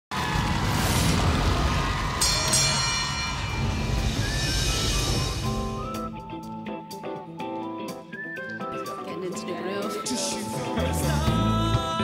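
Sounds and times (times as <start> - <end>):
low rumble: 0.2 - 6.2
bright metallic ringing hit: 1.8 - 5.8.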